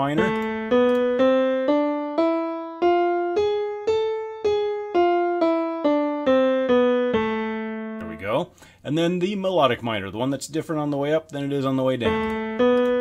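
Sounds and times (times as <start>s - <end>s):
piano playing a minor scale: 0.0s - 8.7s, 12.0s - 13.0s.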